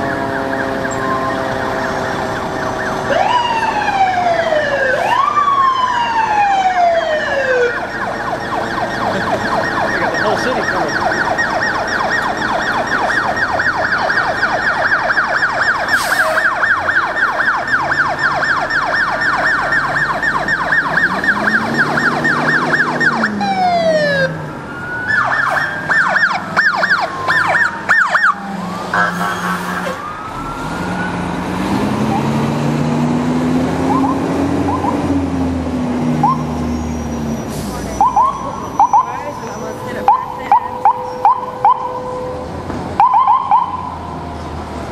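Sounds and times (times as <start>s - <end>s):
police siren yelping: 0.0s - 32.5s, 33.8s - 35.2s, 36.2s - 44.2s
deep siren tone: 0.0s - 35.3s, 35.9s - 44.4s.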